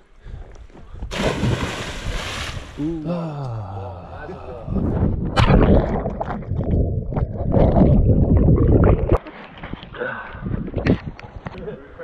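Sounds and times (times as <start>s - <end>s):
water churning and splashing: 1.1s - 3.0s.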